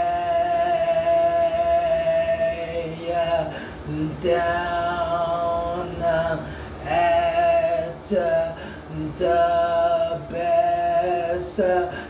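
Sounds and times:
man singing one long note: 0.0s - 12.0s.

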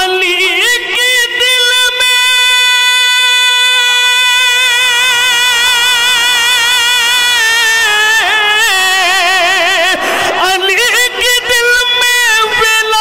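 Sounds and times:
man singing long held note: 0.0s - 13.0s.

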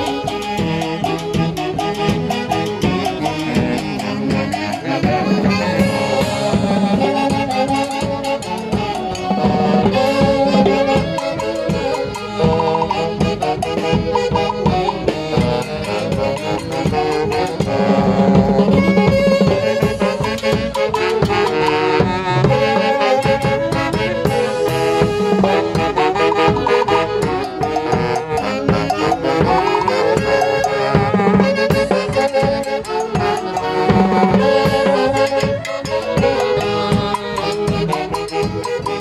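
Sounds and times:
drum kit beat: 0.0s - 39.0s
saxophones playing dance tune: 0.0s - 39.0s.

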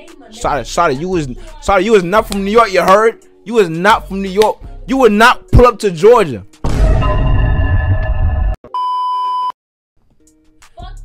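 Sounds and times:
loud noisy sound effect: 6.7s - 8.6s.

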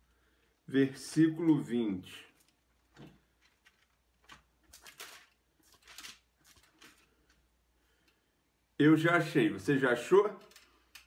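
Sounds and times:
thin pages rustling: 2.3s - 7.5s.

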